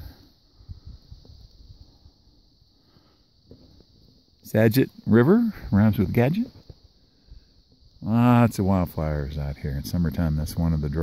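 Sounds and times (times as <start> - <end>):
high-pitched hiss: 0.0 - 11.0
wind on microphone: 0.6 - 2.2.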